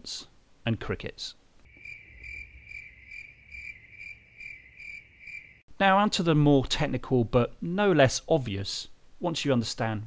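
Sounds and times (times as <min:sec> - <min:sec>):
cricket chirping: 0:01.7 - 0:05.6.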